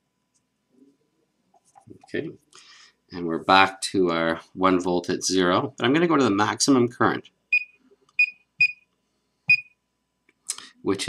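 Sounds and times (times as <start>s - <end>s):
keypad beeps: 7.5s - 8.8s.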